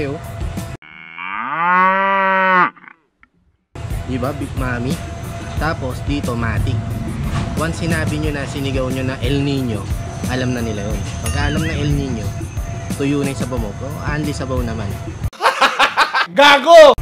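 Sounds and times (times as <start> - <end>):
cow mooing: 0.8 - 3.0.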